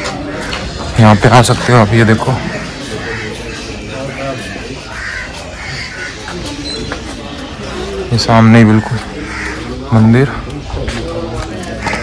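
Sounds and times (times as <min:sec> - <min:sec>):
crows cawing: 0:00.0 - 0:07.1, 0:07.8 - 0:10.4, 0:11.5 - 0:12.0
outdoor background noise: 0:00.0 - 0:12.0.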